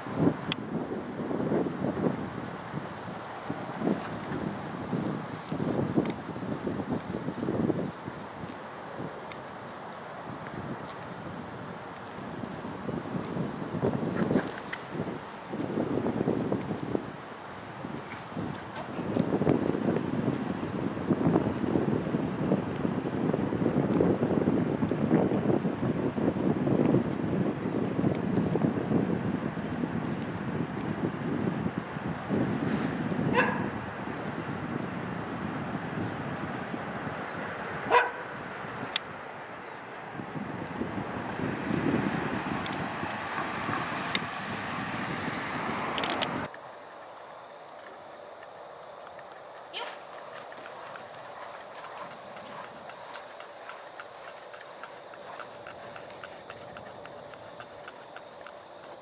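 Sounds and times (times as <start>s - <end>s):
wind buffeting microphone: 0.0s - 46.6s, 47.9s - 59.0s
dog barking: 33.3s - 33.7s, 37.9s - 38.3s, 49.7s - 50.0s.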